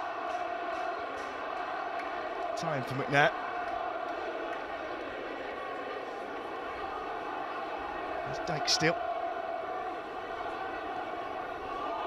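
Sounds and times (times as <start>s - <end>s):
stadium crowd murmur: 0.0s - 12.0s.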